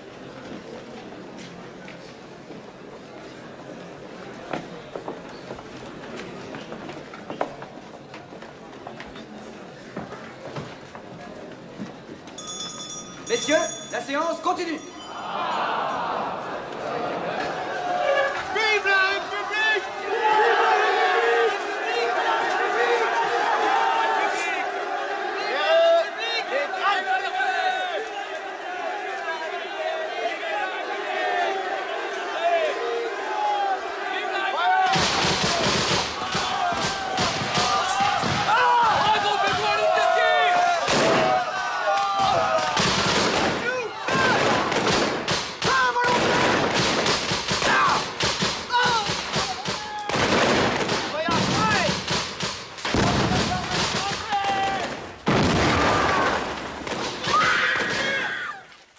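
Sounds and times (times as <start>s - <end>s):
crowd of men shouting: 15.1s - 44.8s
cannon fire: 40.8s - 41.4s, 42.7s - 58.3s
musket shots: 42.6s - 58.2s.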